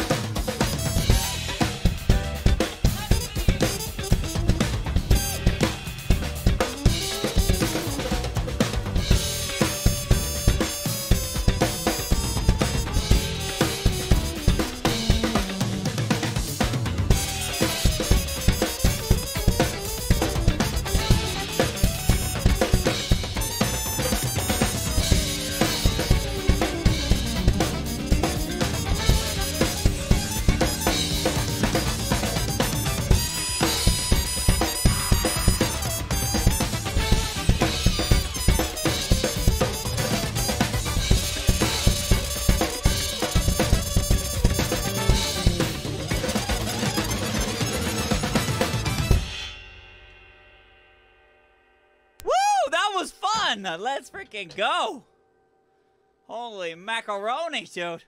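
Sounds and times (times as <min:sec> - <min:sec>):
drum kit funk groove: 0:00.0 - 0:49.5
funk music recording: 0:00.0 - 0:49.5, 0:52.2 - 0:55.0.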